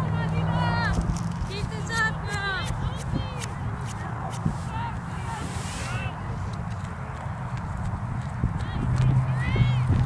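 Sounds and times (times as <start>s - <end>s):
voices calling out: 0.0s - 7.4s
low microphone rumble: 7.7s - 10.0s.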